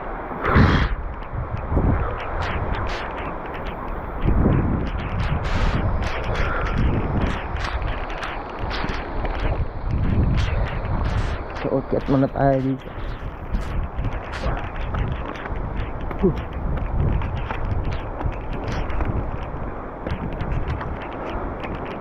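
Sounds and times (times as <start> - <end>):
heavy rain: 0.0 - 22.0
wind buffeting microphone: 0.0 - 22.0.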